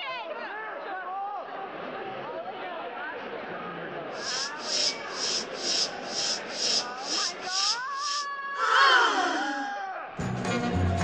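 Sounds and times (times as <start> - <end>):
hissing shaker-like beat: 4.2 - 9.7
pitched gliding sound: 4.2 - 9.8.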